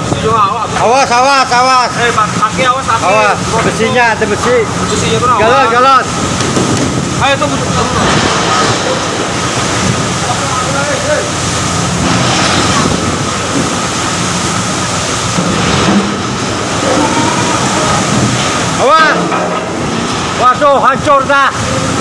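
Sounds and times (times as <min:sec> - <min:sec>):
seawater sloshing across deck: 0:00.0 - 0:22.0.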